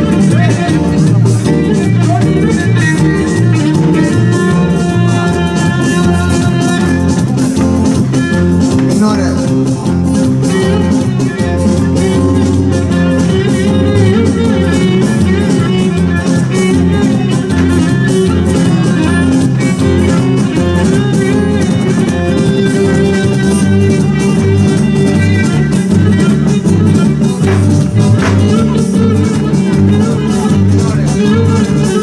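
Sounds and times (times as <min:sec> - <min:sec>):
live band music: 0:00.0 - 0:32.0
plucked string instruments: 0:00.0 - 0:32.0
pulsing bass: 0:00.0 - 0:32.0.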